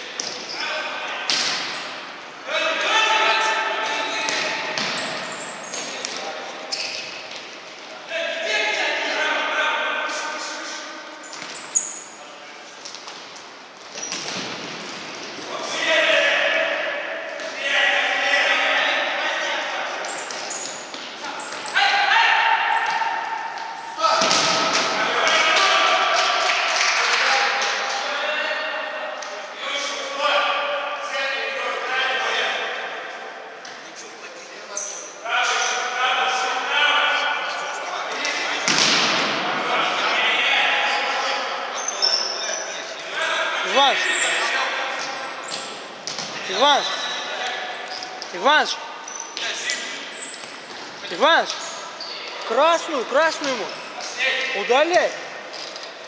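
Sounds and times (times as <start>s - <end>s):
players' voices echoing: 0.0s - 56.0s
shoes squeaking on wooden floor: 4.7s - 7.8s, 11.2s - 12.2s, 12.8s - 15.5s, 19.9s - 21.8s, 44.0s - 48.4s.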